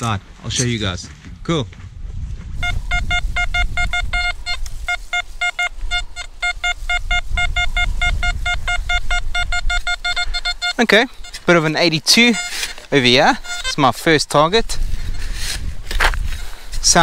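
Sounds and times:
metal detector rapid beeps: 0:02.6 - 0:14.3.

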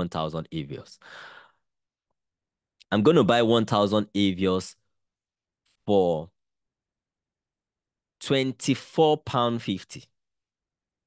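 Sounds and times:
man speaking: 0:00.0 - 0:01.0, 0:02.8 - 0:04.8, 0:05.8 - 0:06.4, 0:08.2 - 0:10.1
man breathing: 0:01.0 - 0:01.7.

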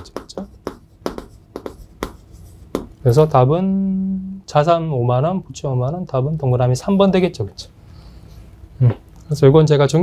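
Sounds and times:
chalk tapping and scraping on chalkboard: 0:00.0 - 0:03.2.

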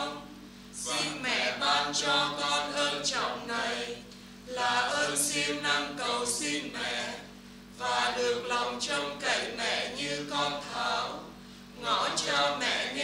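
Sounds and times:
group chanting a prayer: 0:00.0 - 0:13.0.

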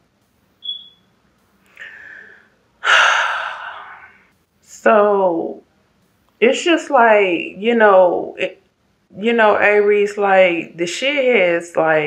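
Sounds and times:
person breathing in: 0:01.7 - 0:04.2
person sighing: 0:01.8 - 0:04.1.

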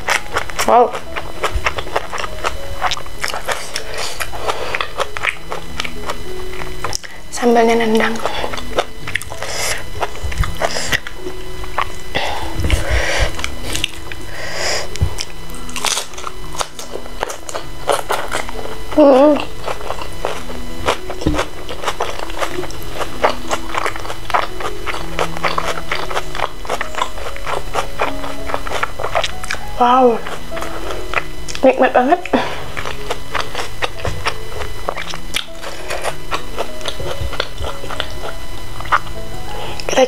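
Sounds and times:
biting and chewing: 0:00.0 - 0:40.0
person humming: 0:00.0 - 0:40.0
soft background music: 0:00.0 - 0:40.0.

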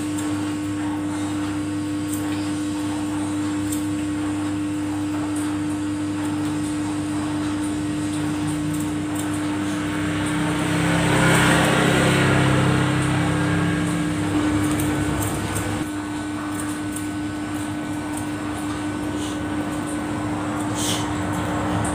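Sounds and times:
machine hum: 0:00.0 - 0:21.9
scissors snipping hair: 0:14.5 - 0:15.8.

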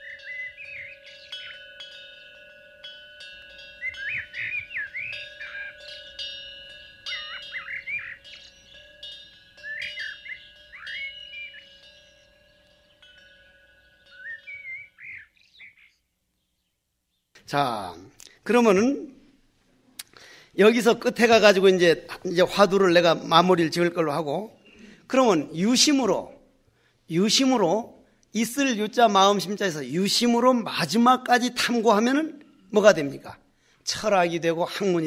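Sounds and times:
chimes ringing: 0:00.0 - 0:15.6
birds chirping: 0:00.0 - 0:18.9, 0:20.1 - 0:26.3.

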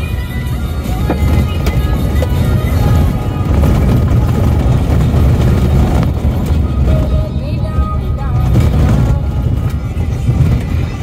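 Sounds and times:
music playing: 0:00.0 - 0:11.0
vehicle driving over gravel: 0:00.8 - 0:11.0.

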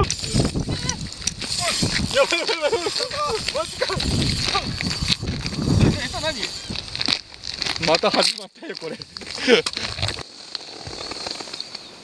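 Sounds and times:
low wind noise: 0:00.0 - 0:12.0.

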